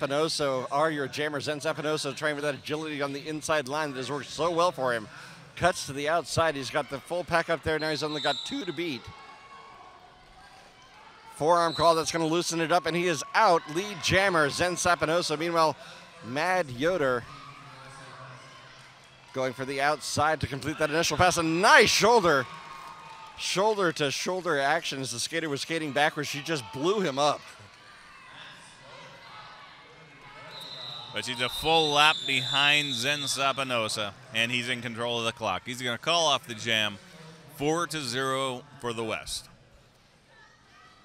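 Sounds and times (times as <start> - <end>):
distant crowd noise: 0.0 - 41.0
referee's whistle: 7.8 - 9.1, 11.5 - 12.3, 30.4 - 33.9.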